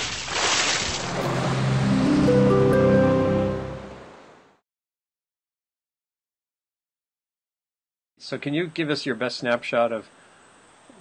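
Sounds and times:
splash into water: 0:00.0 - 0:01.4
chord of held musical notes: 0:01.1 - 0:04.2.

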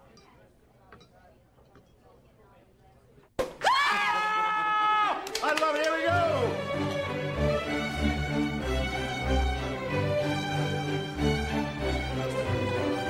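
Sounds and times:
whooping shout: 0:03.6 - 0:05.3.

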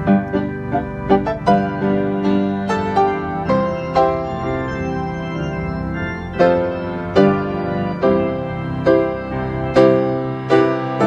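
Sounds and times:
grand piano chords and notes: 0:00.0 - 0:11.0.

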